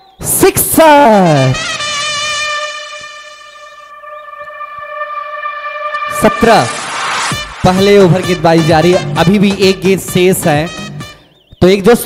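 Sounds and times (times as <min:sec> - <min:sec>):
sustained electronic note: 0:01.5 - 0:08.5.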